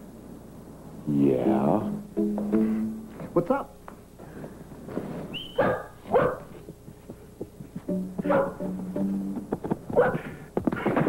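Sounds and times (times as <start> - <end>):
dog barking: 5.5 - 6.5, 8.3 - 8.6, 10.0 - 10.4.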